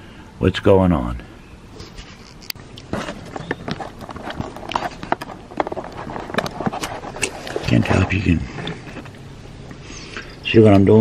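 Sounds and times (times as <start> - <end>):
camera handling knocks and scrapes: 2.2 - 7.7.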